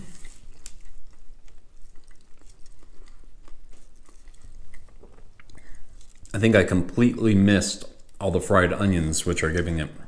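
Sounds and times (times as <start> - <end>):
wet mouth clicks and smacks: 0.0 - 6.3
man chewing food: 0.0 - 6.4.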